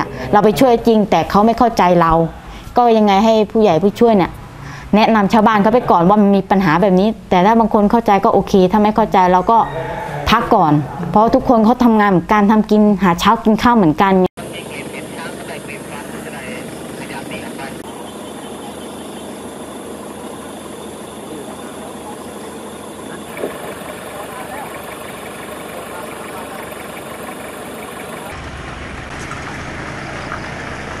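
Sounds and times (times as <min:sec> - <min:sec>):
faint voices: 0:14.4 - 0:28.4
vehicle engine running: 0:14.4 - 0:31.0.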